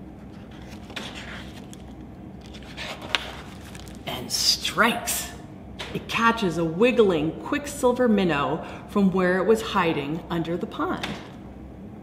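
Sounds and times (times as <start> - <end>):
paper page rustle: 0.2 - 4.1.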